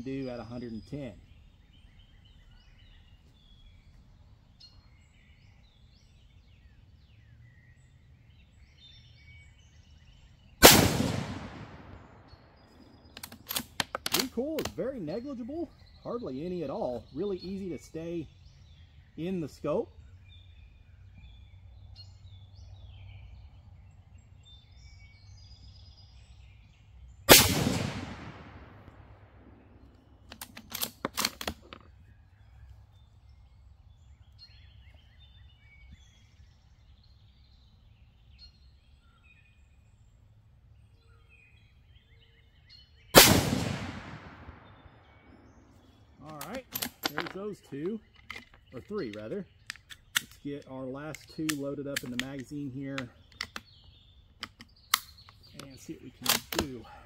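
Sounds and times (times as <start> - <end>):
birds chirping: 0.0 - 57.0
rifle shots: 10.6 - 12.3, 27.3 - 29.2, 43.2 - 45.0
rifle bolt metallic clicks: 13.1 - 14.8, 30.2 - 31.9, 46.4 - 47.4, 48.2 - 52.5, 53.3 - 53.7, 54.4 - 56.8.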